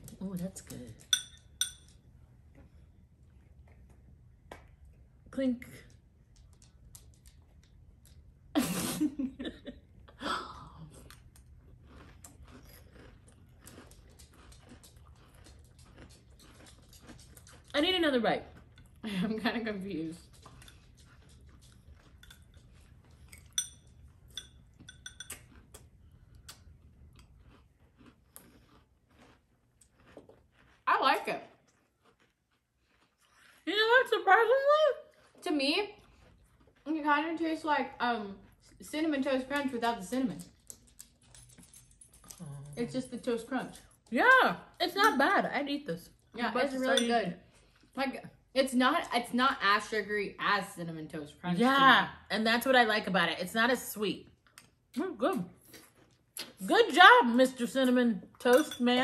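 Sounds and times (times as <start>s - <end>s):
metal spoon clinking ceramic bowl: 1.0s - 2.0s, 23.3s - 25.4s, 58.4s - 59.0s.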